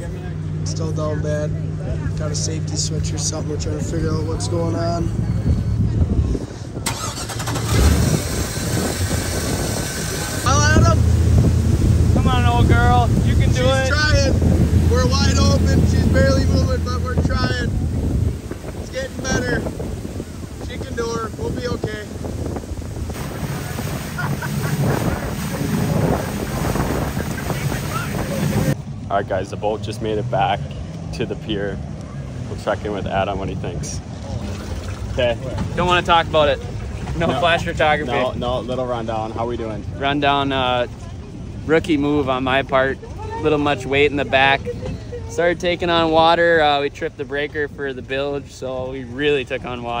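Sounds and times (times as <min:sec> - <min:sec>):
water rushing along hull: 0:00.0 - 0:50.0
wind buffeting microphone: 0:03.1 - 0:28.8
boat engine running unevenly: 0:03.6 - 0:28.8.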